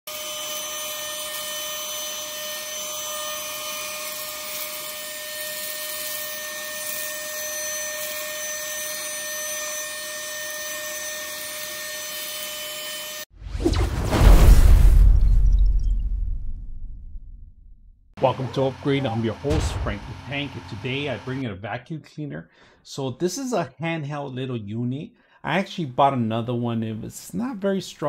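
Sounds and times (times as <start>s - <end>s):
mini vacuum motor whine: 0.1s - 13.3s
deep booming whoosh: 13.3s - 18.1s.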